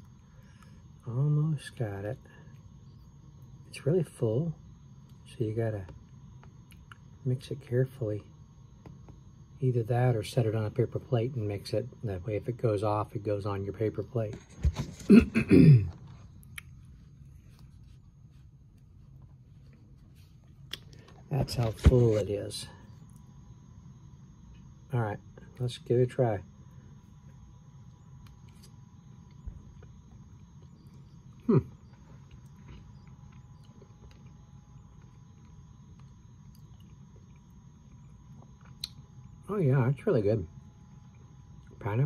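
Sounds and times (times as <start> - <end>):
quiet chewing: 0.0 - 1.0, 5.9 - 7.2, 15.9 - 22.2, 22.8 - 23.5, 26.7 - 39.4
low room hum: 0.0 - 42.0.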